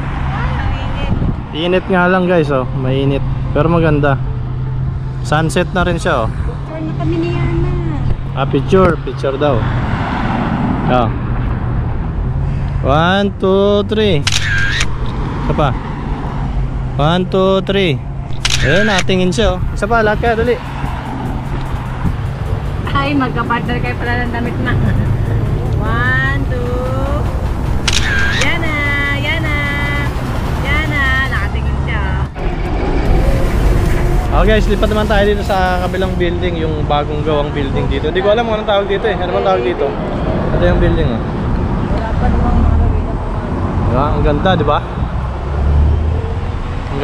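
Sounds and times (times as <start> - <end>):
cars driving past: 0.0 - 47.0
road traffic: 0.0 - 47.0
wind on microphone: 0.8 - 1.6
person speaking: 18.3 - 20.7, 25.7 - 32.0
short high-pitched voices: 27.9 - 30.1.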